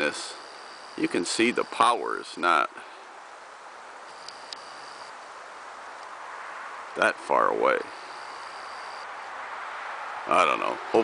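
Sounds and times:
faint high whine: 0.0s - 2.7s, 4.0s - 5.2s
woodland ambience hiss: 0.0s - 11.0s.

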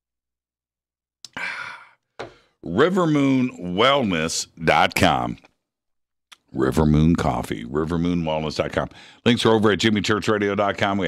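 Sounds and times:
man sighing: 1.3s - 2.6s.

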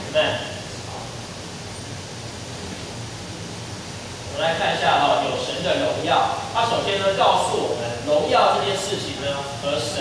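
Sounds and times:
room noise hiss: 0.0s - 10.0s.

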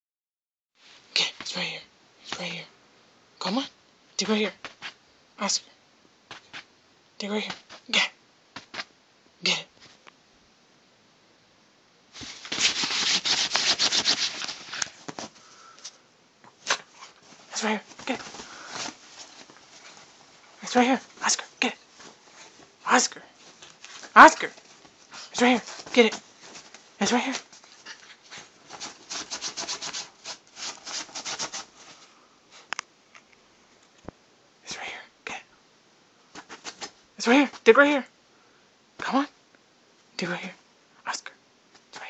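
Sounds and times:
dog paws scratching fabric: 4.3s - 5.0s, 12.2s - 32.7s, 36.4s - 37.7s.

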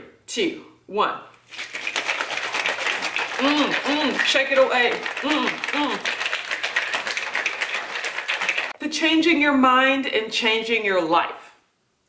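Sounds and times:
shaker bottle with liquid sloshing: 1.4s - 8.8s.

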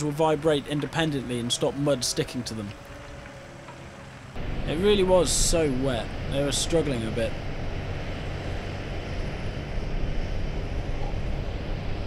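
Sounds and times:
tractor engine under heavy load: 0.0s - 12.0s.

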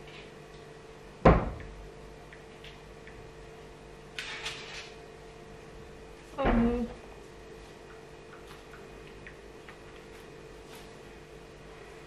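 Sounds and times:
door shutting thump: 1.2s - 1.7s.

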